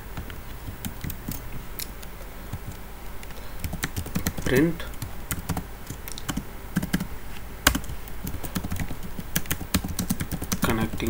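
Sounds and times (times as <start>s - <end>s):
computer keyboard typing: 0.2s - 2.8s, 3.6s - 11.0s.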